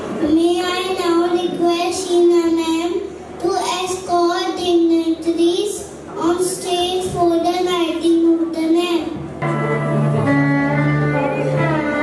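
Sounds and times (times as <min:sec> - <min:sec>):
child singing into a microphone: 0:00.2 - 0:09.2.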